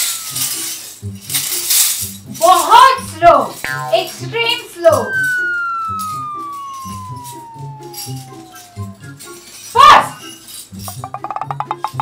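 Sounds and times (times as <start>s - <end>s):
tone gliding down in pitch: 3.7s - 9.3s.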